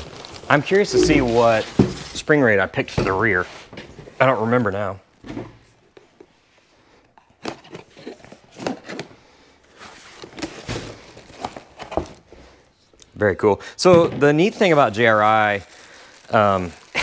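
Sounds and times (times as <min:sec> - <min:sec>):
packaging crinkling and rustling: 0:00.0 - 0:00.8, 0:09.7 - 0:12.2, 0:14.4 - 0:17.0.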